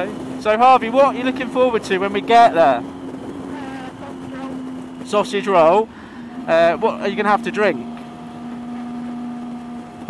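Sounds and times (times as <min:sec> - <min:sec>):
motorcycle engine cruising: 0:00.0 - 0:10.0
wind and road hiss: 0:00.0 - 0:10.0.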